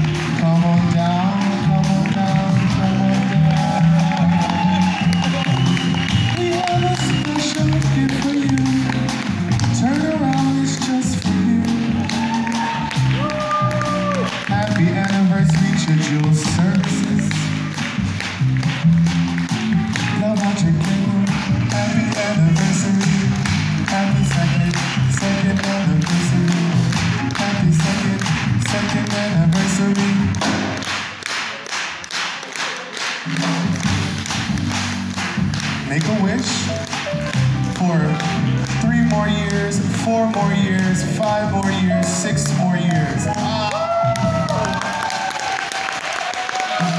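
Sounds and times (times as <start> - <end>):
man singing: 0.0 - 17.9, 19.8 - 30.5, 35.8 - 44.8
double bass: 0.0 - 30.9, 33.3 - 44.8
drum kit with cymbal taps: 0.0 - 31.1, 33.2 - 44.6
grand piano: 0.0 - 31.2, 33.6 - 45.5.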